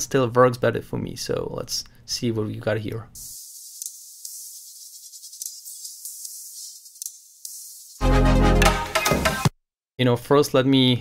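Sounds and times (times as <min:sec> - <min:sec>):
thin electronic music: 0:03.4 - 0:09.5
rapid percussion ticks: 0:03.6 - 0:08.0.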